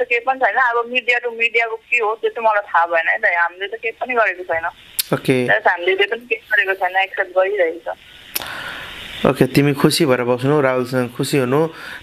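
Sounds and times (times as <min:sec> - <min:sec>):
person talking: 0:00.0 - 0:08.0.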